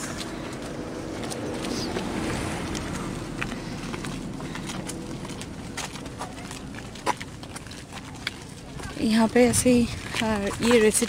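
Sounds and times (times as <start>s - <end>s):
footsteps on paved road: 0.0s - 11.0s
outdoor background noise: 0.0s - 11.0s.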